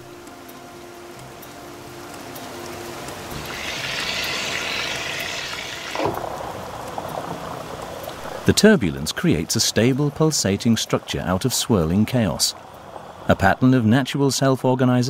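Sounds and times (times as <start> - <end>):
bright hiss: 2.5 - 6.6
water rushing down a funnel: 3.3 - 11.1.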